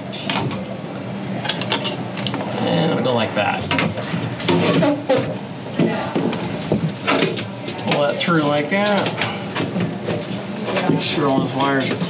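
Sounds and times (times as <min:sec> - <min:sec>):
steady noisy background: 0:00.0 - 0:12.0.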